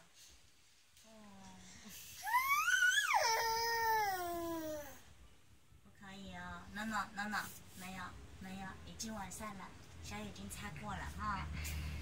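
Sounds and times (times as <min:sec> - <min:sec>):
small child whining cry: 0:02.2 - 0:05.0.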